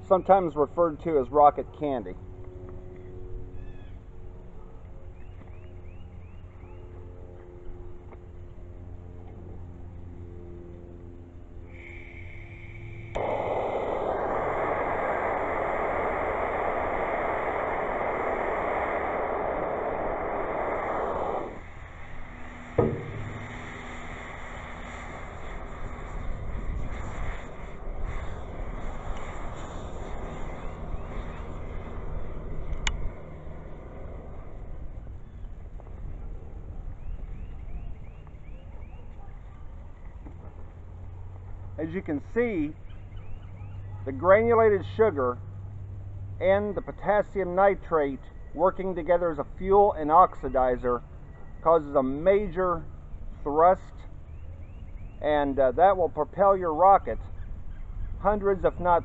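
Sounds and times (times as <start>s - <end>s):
rocket fuel burning: 11.6s - 37.1s
propane torch hissing: 11.7s - 33.2s
sharp knock: 22.7s - 24.2s.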